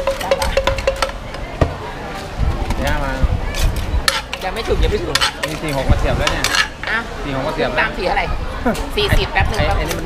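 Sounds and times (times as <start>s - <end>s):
wooden pestle knocking in mortar: 0.0s - 1.8s.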